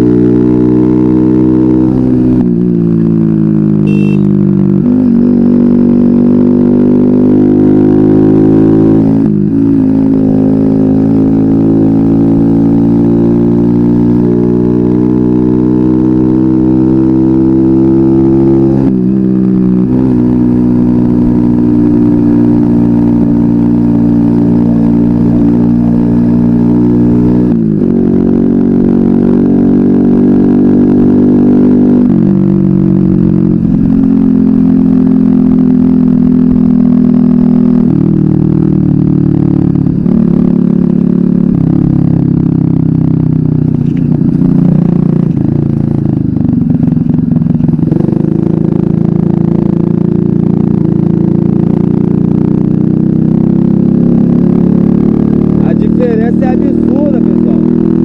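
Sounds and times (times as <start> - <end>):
moped engine running: 0.0 - 5.4, 31.0 - 58.0.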